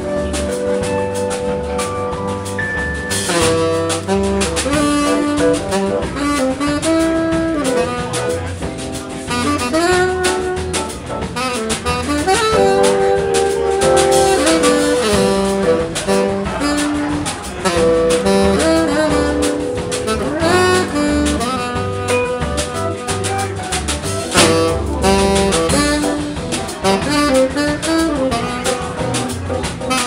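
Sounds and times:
drums: 0.0 - 30.0
electric keyboard: 0.0 - 30.0
upright bass: 0.0 - 30.0
tenor saxophone melody: 2.4 - 30.0.

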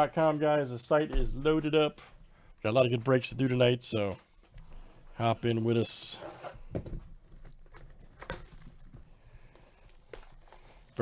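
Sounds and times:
plastic wrap handling: 7.2 - 11.0.

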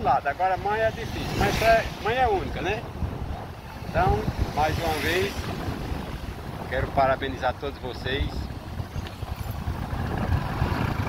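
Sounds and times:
motorcycle engine rumble: 0.0 - 11.0
road noise: 0.0 - 11.0
wind buffeting microphone: 0.0 - 11.0.

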